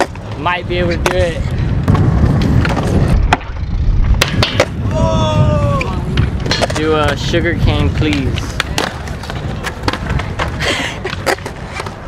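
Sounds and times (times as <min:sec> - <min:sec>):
skateboard wheels rolling on concrete: 0:00.0 - 0:12.0.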